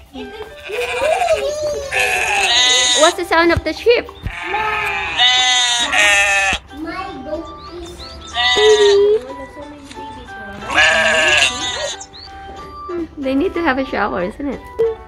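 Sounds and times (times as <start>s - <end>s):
music playing: 0.0s - 15.0s
sheep bleating: 0.6s - 3.1s, 4.3s - 6.6s, 8.4s - 9.0s, 10.6s - 12.0s.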